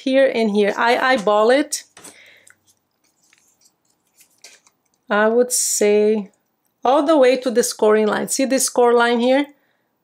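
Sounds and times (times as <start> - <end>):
faint clicks and rustles: 1.0 - 5.1.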